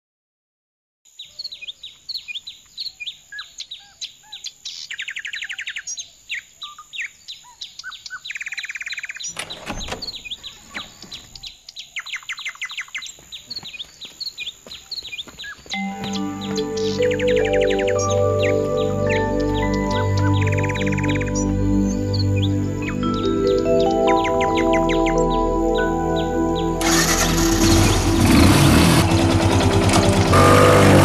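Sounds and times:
birds chirping: 1.1s - 31.0s
bird trills: 1.2s - 28.2s
music: 15.8s - 31.0s.

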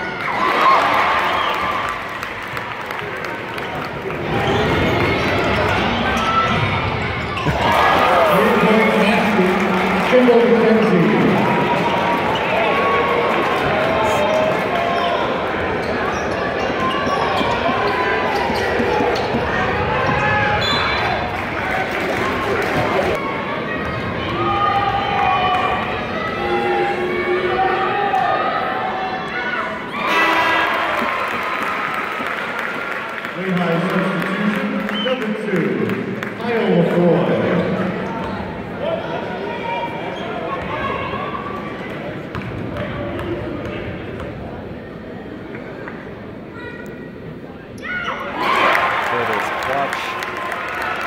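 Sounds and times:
crowd chatter: 1.4s - 51.0s.

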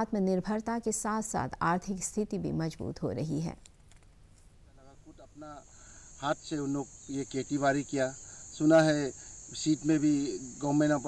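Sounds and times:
insects chirring: 4.7s - 11.0s
man speaking: 4.7s - 11.0s.

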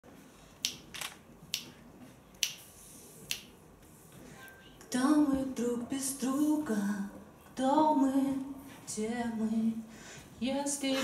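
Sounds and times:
finger snaps: 2.4s - 2.6s, 3.3s - 3.5s.

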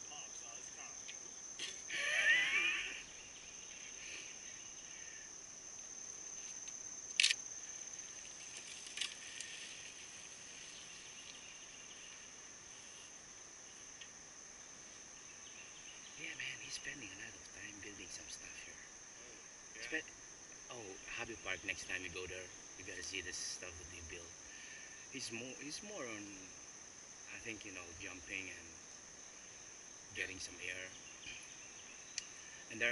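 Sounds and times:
insects chorus: 0.0s - 32.9s
sharp clicks: 6.7s - 7.4s.

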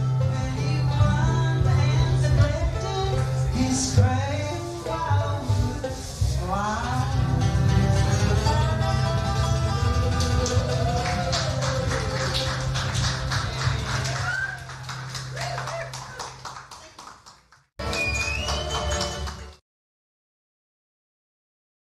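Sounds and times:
audience clapping and calling out: 9.7s - 19.6s.

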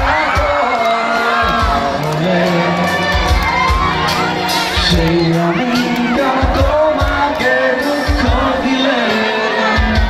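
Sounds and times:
children shouting and cheering: 0.0s - 10.0s
drum beats: 0.0s - 10.0s
live band music: 0.0s - 10.0s.

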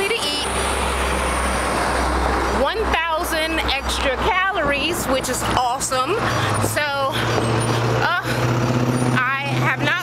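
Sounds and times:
woman talking: 0.0s - 0.5s, 2.5s - 7.3s, 8.0s - 8.4s, 9.2s - 10.0s
road traffic: 0.0s - 10.0s.

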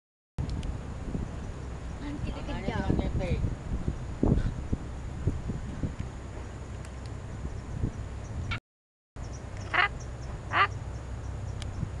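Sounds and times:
monkey harsh quack-like calls: 9.6s - 10.8s.

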